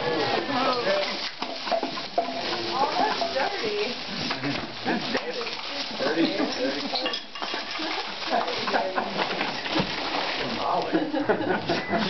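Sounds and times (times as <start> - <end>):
constant crackling hiss: 0.0 - 12.0
man laughing: 10.9 - 12.0.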